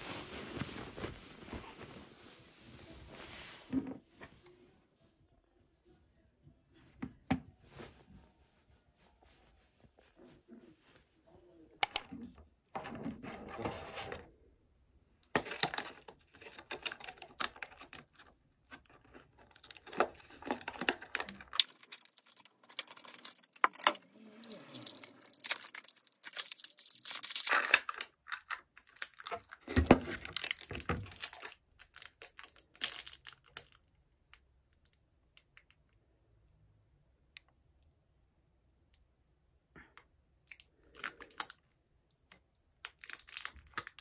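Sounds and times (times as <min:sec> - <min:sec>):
plastic packaging crinkling: 0:15.4 - 0:33.8, 0:42.8 - 0:44.0.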